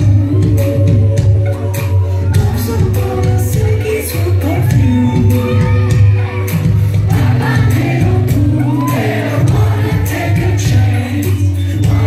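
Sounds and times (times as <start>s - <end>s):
bass line: 0.0s - 12.0s
person singing: 0.0s - 12.0s
audience singing along: 0.8s - 12.0s.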